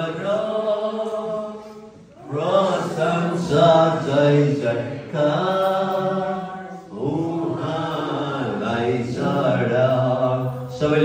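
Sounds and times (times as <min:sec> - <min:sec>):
man singing chant-like melody: 0:00.0 - 0:11.0.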